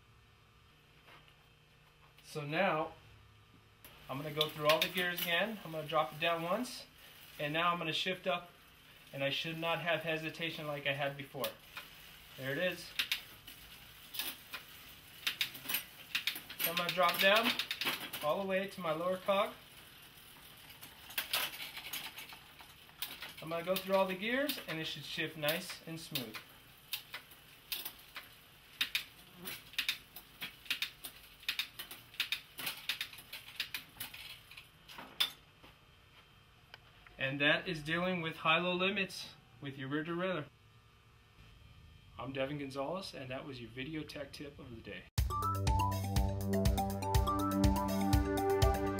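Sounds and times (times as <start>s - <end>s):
bicycle chain and cassette clicking: 11.7s - 34.6s.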